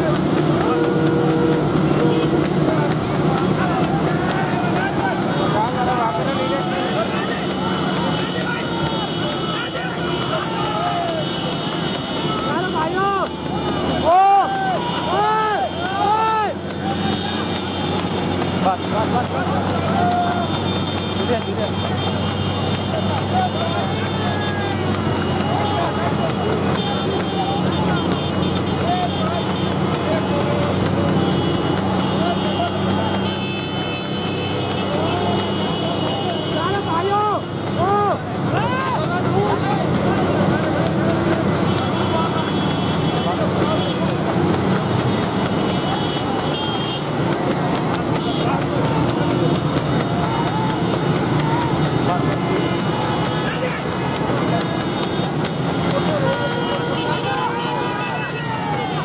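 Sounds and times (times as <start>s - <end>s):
horns sounding: 0.0s - 59.0s
men shouting: 0.0s - 59.0s
motorcycle engines running: 0.0s - 59.0s.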